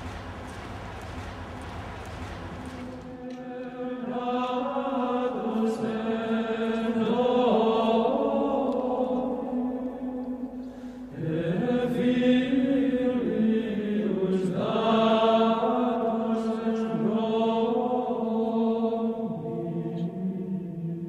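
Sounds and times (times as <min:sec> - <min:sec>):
voices singing held notes: 0:00.0 - 0:21.0.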